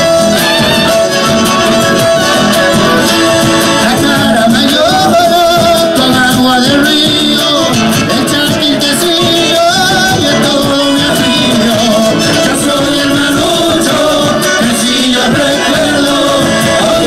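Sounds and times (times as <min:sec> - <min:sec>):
fiddles: 0:00.0 - 0:04.5
bass drums: 0:00.0 - 0:17.0
guitar: 0:00.0 - 0:17.0
men singing: 0:00.0 - 0:17.0.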